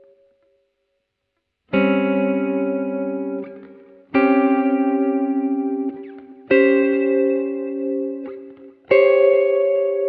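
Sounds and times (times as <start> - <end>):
electric guitar chords: 1.7 - 10.0.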